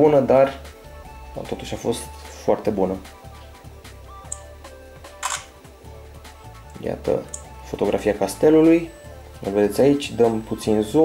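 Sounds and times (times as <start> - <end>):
soft background music: 0.0 - 11.0
high tick: 4.3 - 4.5
camera shutter sound: 5.1 - 5.6.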